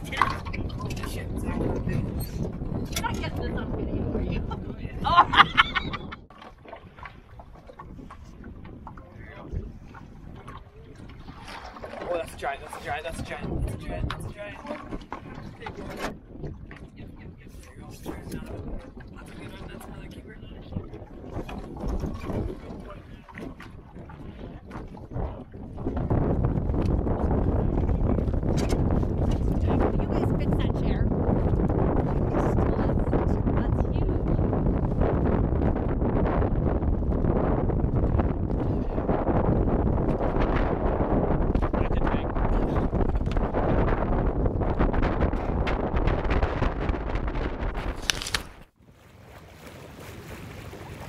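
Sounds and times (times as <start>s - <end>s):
wind buffeting microphone: 0.0s - 48.8s
waves against small boat: 0.0s - 51.0s.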